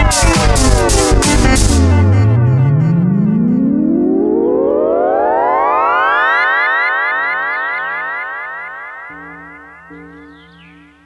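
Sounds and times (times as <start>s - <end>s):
synthesizer riser: 0.0s - 11.0s.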